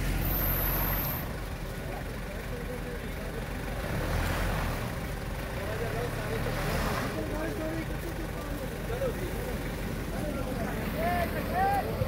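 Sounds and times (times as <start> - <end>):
people talking and calling out: 1.2 - 12.0.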